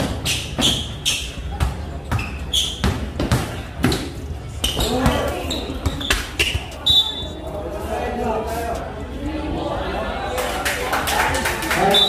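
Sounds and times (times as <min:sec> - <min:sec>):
spectators talking: 0:00.1 - 0:12.0
basketball bouncing on court: 0:01.5 - 0:06.8.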